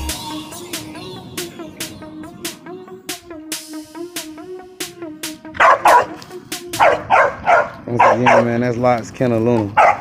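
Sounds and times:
background music with beat: 0:00.0 - 0:07.9
dog barking: 0:05.5 - 0:06.2, 0:06.8 - 0:08.6, 0:09.7 - 0:10.0.

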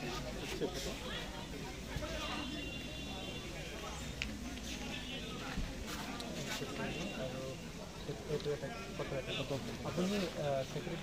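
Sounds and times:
people talking faintly: 0:00.0 - 0:11.0.

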